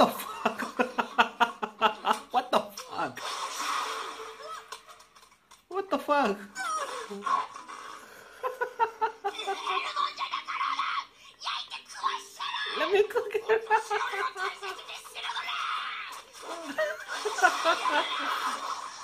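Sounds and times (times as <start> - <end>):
cartoon characters speaking: 9.4 - 13.4.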